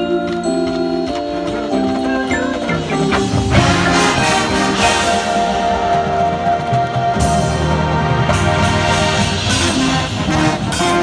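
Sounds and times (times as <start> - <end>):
mallet keyboards: 0.0 - 11.0
marching band playing: 0.0 - 11.0
percussion hits: 0.7 - 11.0.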